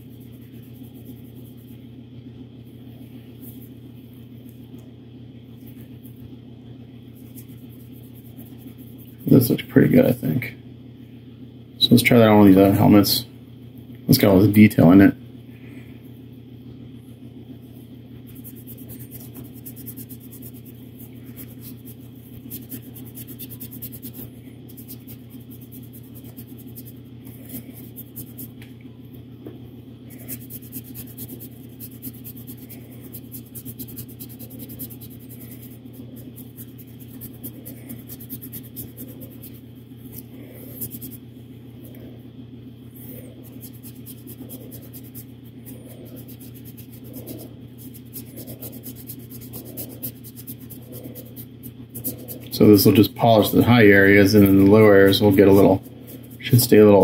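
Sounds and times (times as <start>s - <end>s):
scratching and rubbing strokes: 0.0s - 1.8s, 7.1s - 10.2s, 18.2s - 28.6s, 30.0s - 57.0s
steady low hum: 0.0s - 57.0s.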